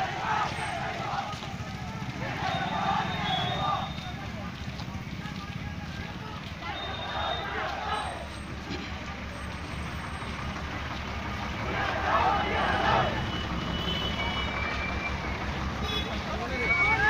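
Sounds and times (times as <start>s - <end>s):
people's voices: 0.0s - 17.0s
truck engine low throb: 7.9s - 17.0s.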